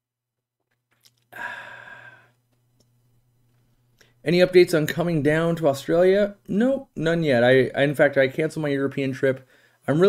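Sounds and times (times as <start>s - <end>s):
man sighing: 1.3s - 2.4s.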